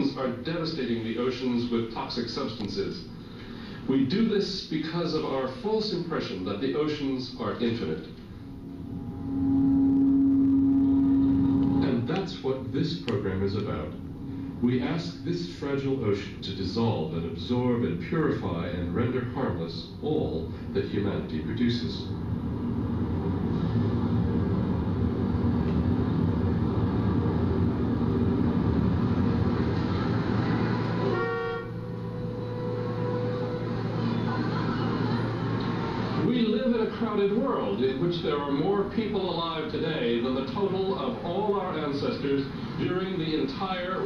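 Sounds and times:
low background hum: 0.0 - 44.0
low soundtrack tone over speakers: 0.0 - 44.0
car horns: 31.0 - 34.1.

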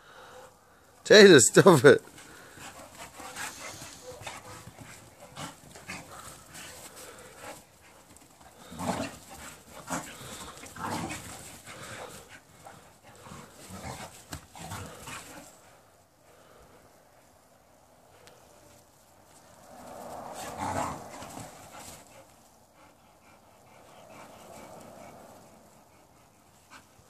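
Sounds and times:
dogs panting while play-fighting: 2.0 - 27.0.

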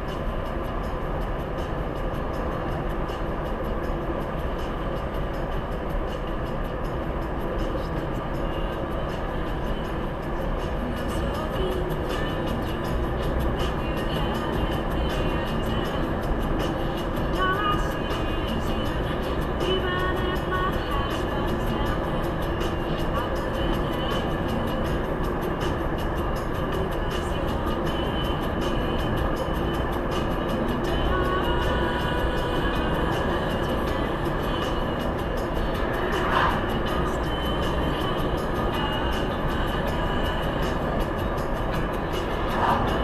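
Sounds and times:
car road and engine noise: 0.0 - 43.0
music playing: 0.0 - 43.0.

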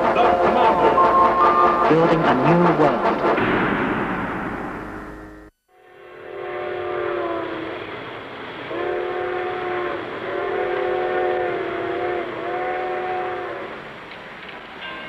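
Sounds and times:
multi-tone whistle blasts: 0.2 - 1.9
steady background hiss: 3.8 - 15.0.

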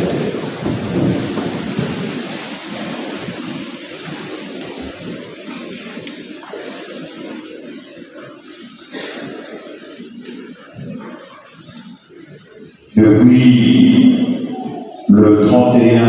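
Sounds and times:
steady rumbling noise: 0.0 - 16.0.

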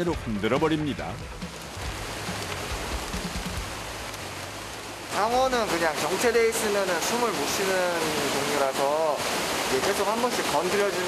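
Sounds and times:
water sloshing in plastic bags: 0.8 - 7.6.

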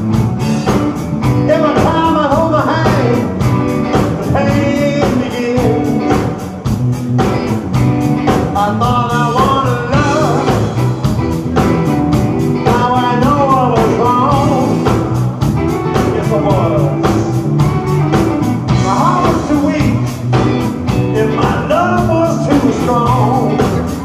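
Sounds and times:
blues rock band playing: 0.0 - 24.0
drums steady beat: 0.0 - 24.0.

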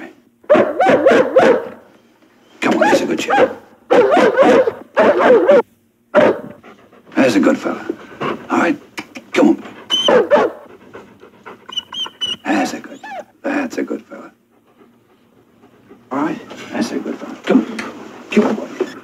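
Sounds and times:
dog barking: 0.4 - 1.9, 2.6 - 6.6, 9.9 - 10.7.

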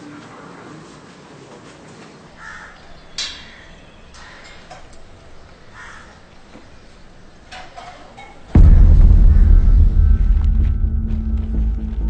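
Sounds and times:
crows cawing: 2.4 - 7.0.

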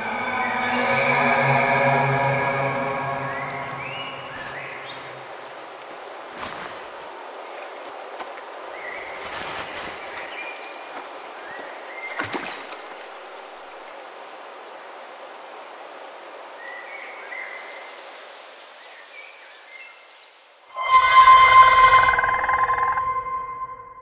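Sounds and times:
loud ringing horror stinger: 0.0 - 5.4, 20.7 - 24.0
jungle ambient hiss: 0.0 - 21.8.

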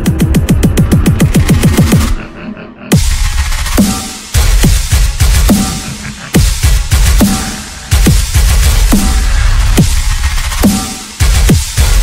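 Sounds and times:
heavy dubstep drum roll: 0.0 - 12.0.

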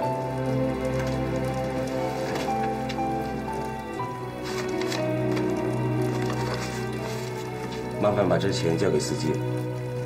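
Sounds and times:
soft held notes music: 0.0 - 10.0.

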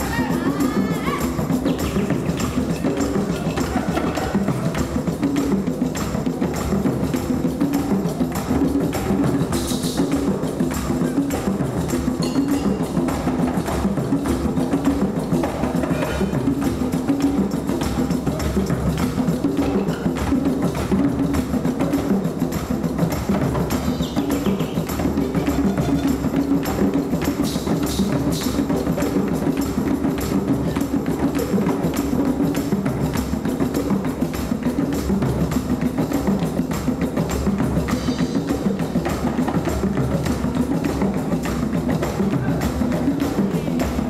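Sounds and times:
hand drums: 0.0 - 44.0
marimbas playing repeating pattern: 0.0 - 44.0.

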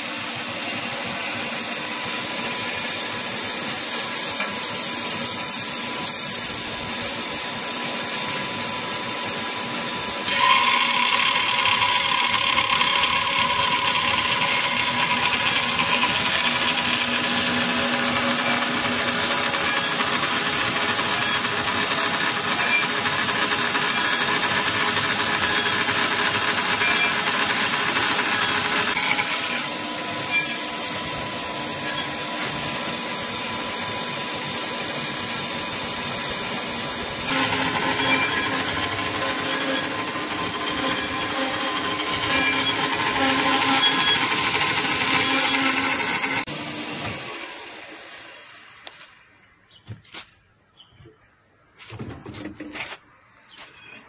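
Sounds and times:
band saw cutting metal: 0.0 - 48.9.

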